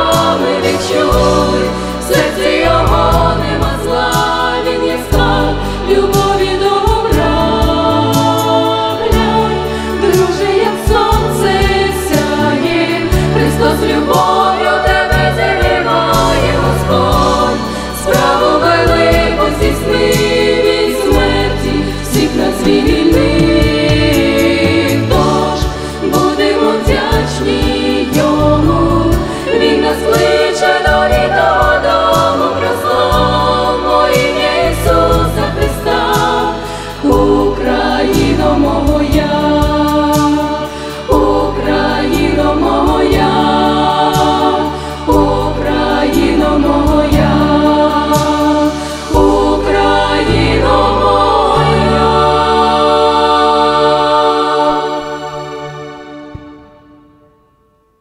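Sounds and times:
low bass accompaniment: 0:00.0 - 0:55.6
women singing in close harmony: 0:00.0 - 0:56.4.

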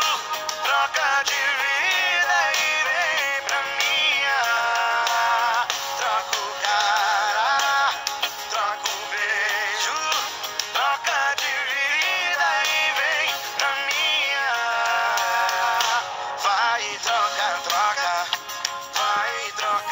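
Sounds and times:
guitar and band backing: 0:00.0 - 0:19.9
man singing: 0:00.0 - 0:19.9.

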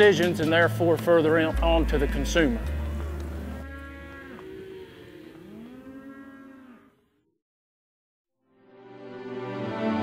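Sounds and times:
cattle mooing: 0:01.5 - 0:07.3.

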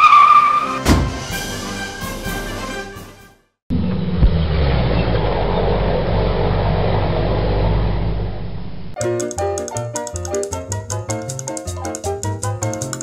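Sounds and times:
sharp knock: 0:00.8 - 0:01.2
vehicle engine rumbling: 0:03.7 - 0:09.0.

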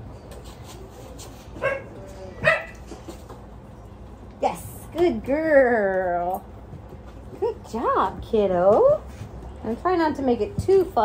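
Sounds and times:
dog barking: 0:01.6 - 0:02.8.

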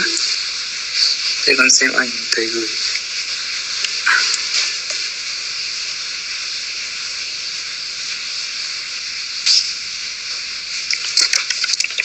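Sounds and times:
high background hiss: 0:00.0 - 0:12.0.

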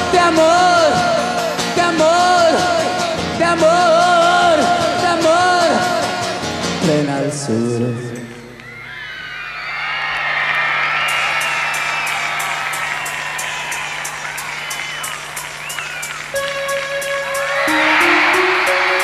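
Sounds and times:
concert crowd cheering and screaming: 0:07.7 - 0:19.0
synthesizer keyboard line: 0:16.3 - 0:19.0.

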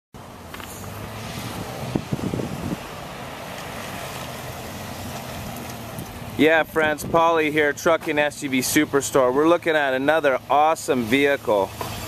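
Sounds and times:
distant road traffic: 0:00.2 - 0:12.0
wind on microphone: 0:01.3 - 0:03.0.

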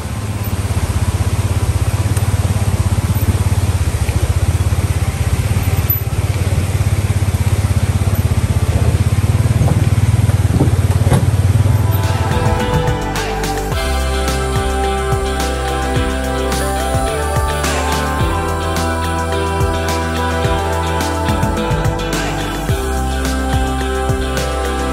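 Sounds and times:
creek rushing: 0:00.0 - 0:24.9
utility vehicle engine idling: 0:00.0 - 0:24.9
music: 0:11.6 - 0:24.9.

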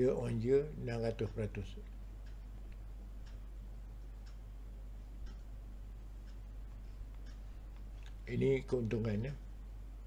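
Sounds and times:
low steady hum: 0:00.0 - 0:10.0
faint ticks: 0:01.3 - 0:04.5, 0:05.2 - 0:05.5, 0:06.2 - 0:08.2.

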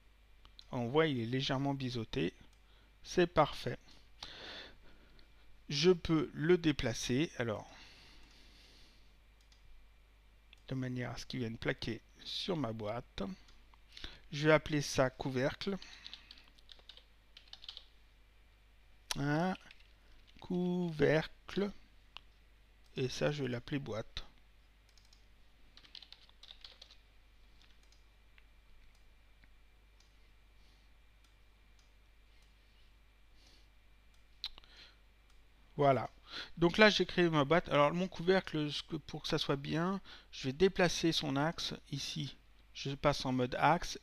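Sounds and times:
steady low hum: 0:00.0 - 0:44.0
computer keyboard typing: 0:15.8 - 0:17.9, 0:19.5 - 0:19.9, 0:24.9 - 0:27.0.

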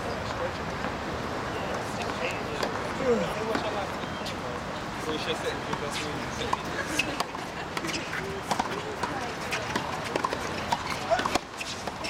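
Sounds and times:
murmur of voices: 0:00.0 - 0:12.0
tennis ball bouncing: 0:05.7 - 0:12.0
racket hitting tennis ball: 0:06.4 - 0:12.0.

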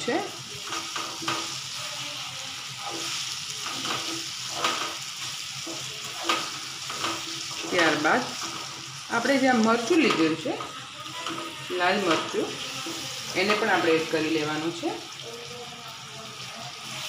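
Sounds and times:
food sizzling in hot oil: 0:00.0 - 0:17.0
spatula scraping a pan: 0:00.5 - 0:14.2.

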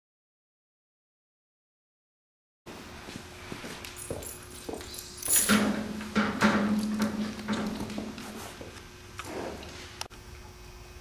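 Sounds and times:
faint steady hum: 0:02.7 - 0:11.0.

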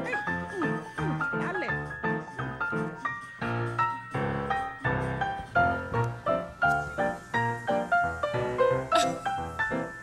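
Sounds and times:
light jazzy tune: 0:00.0 - 0:10.0.

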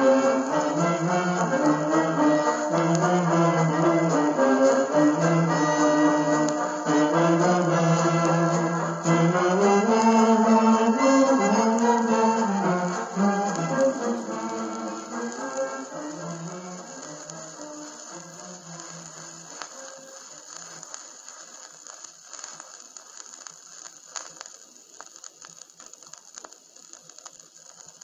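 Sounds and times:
song notes: 0:00.0 - 0:20.1
steady hiss: 0:00.0 - 0:28.0
vinyl crackle and clicks: 0:00.0 - 0:28.0.

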